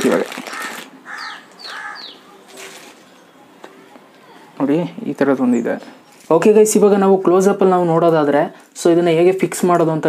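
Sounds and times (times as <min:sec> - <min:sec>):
crow cawing: 0:00.4 - 0:02.5.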